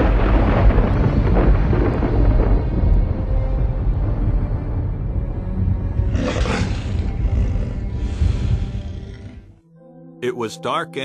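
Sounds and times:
low rumbling music: 0:00.0 - 0:11.0
tiger roaring: 0:06.0 - 0:09.6.

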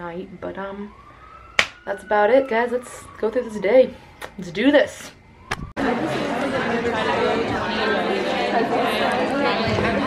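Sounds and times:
crowd chatter in echoing hall: 0:05.8 - 0:10.0.

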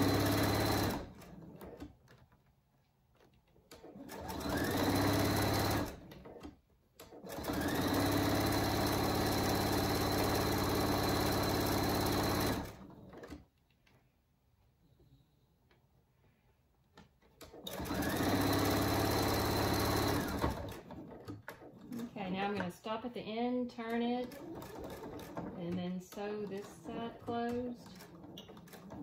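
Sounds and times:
sewing machine stitching: 0:00.0 - 0:02.5, 0:03.1 - 0:13.6, 0:16.9 - 0:29.0.

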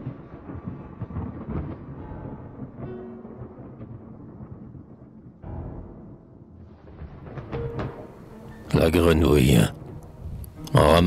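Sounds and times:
rolling thunder: 0:00.0 - 0:10.6
dark brooding music: 0:00.0 - 0:11.0.

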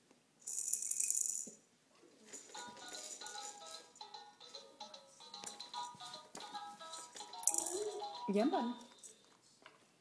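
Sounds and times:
toy rattling: 0:00.4 - 0:01.6, 0:02.3 - 0:09.3.

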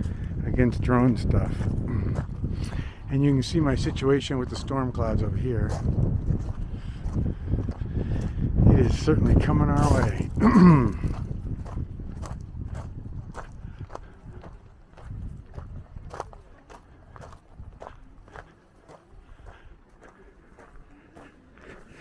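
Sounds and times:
footsteps on gravel: 0:00.0 - 0:22.0
wind buffeting microphone: 0:00.0 - 0:22.0.

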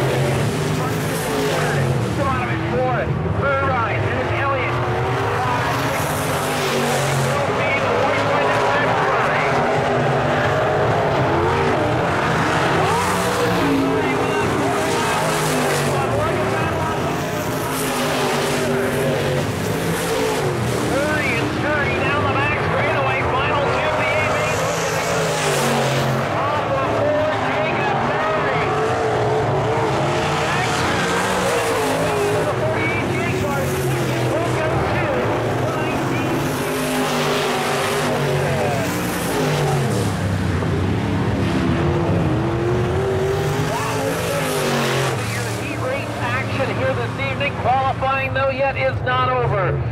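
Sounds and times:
race car engines running hard: 0:00.0 - 0:49.9.

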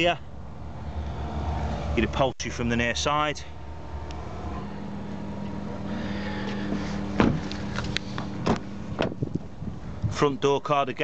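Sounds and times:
steady low hum: 0:00.2 - 0:11.0
car door knocks and clunks: 0:07.2 - 0:07.5, 0:08.4 - 0:09.5.

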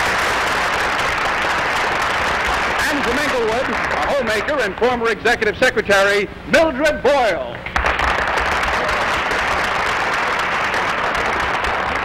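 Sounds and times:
audience applauding: 0:00.0 - 0:05.5, 0:07.7 - 0:12.0.

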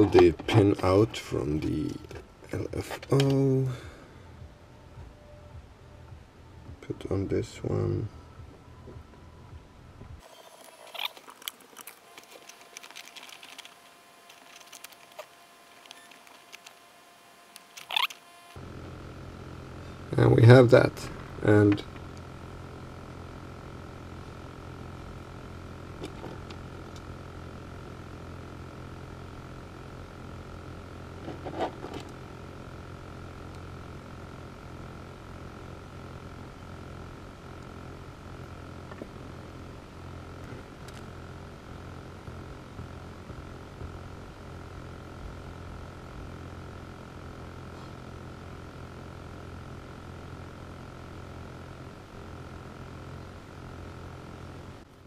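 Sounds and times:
faint high-pitched whine: 0:00.0 - 0:55.0
low electrical hum: 0:00.0 - 0:55.0.

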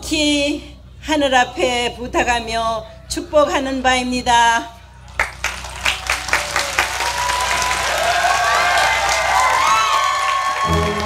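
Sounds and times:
people cheering: 0:05.0 - 0:11.0
audience applause: 0:05.1 - 0:11.0.

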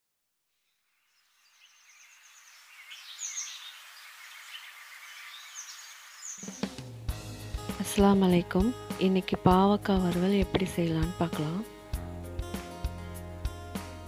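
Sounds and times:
birds chirping: 0:01.0 - 0:07.0
music with low notes: 0:06.6 - 0:14.0.

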